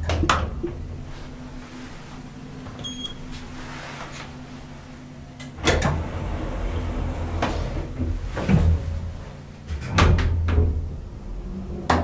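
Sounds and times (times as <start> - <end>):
steady low hum: 0.0 - 12.0
elevator door clunks: 5.6 - 10.9.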